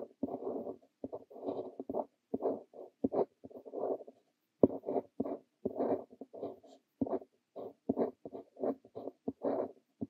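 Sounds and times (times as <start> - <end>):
fountain pen scratching on paper: 0.0 - 10.0.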